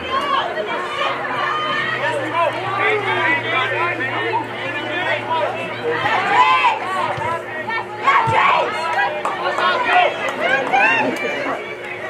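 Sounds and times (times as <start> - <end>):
people shouting and calling: 0.0 - 12.0.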